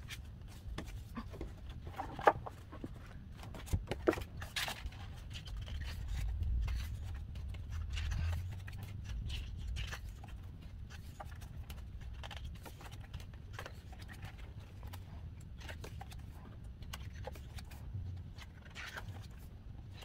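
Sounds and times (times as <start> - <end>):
photobook pages turning: 0.0 - 20.0.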